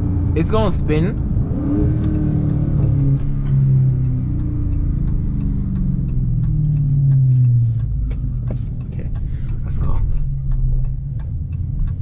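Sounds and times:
car engine drone from inside cabin: 0.0s - 12.0s.

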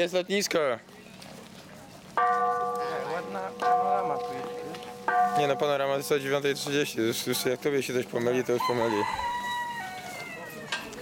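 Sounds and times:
large temple bell ringing: 2.2s - 8.0s.

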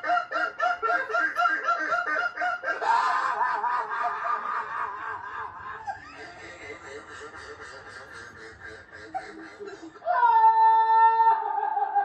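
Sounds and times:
man laughing high-pitched: 0.0s - 10.4s.

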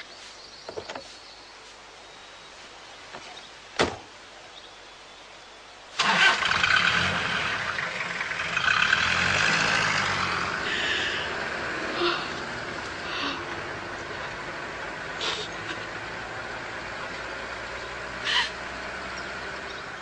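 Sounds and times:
car engine starting and running: 6.0s - 20.0s.

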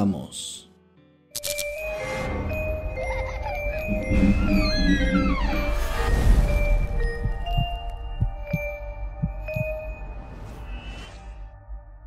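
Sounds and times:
ringing electronic tones: 3.9s - 10.0s
heartbeat-like double thump: 6.9s - 9.8s.

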